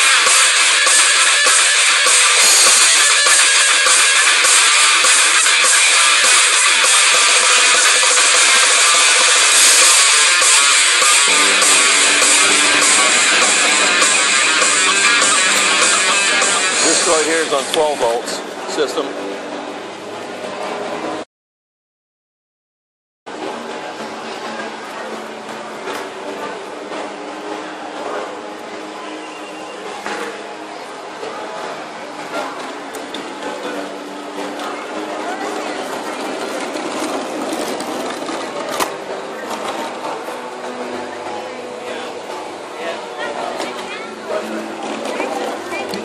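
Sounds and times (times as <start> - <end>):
indistinct crowd voices: 0.0 - 21.2, 23.3 - 46.0.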